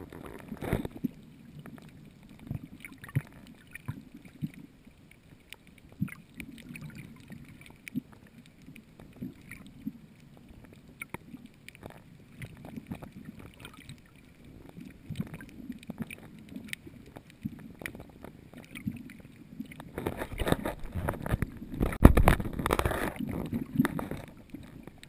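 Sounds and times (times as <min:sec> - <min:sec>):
underwater rumble of moving water: 0:00.0 - 0:25.0
small clicks and knocks: 0:14.7 - 0:25.0.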